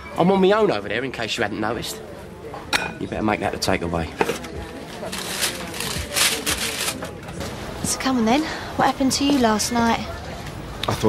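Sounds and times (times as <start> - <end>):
faint chatter: 0.0 - 11.0.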